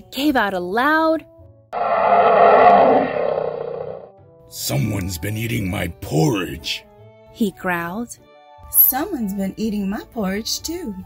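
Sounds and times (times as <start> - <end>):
deep animal roar: 1.8 - 4.1.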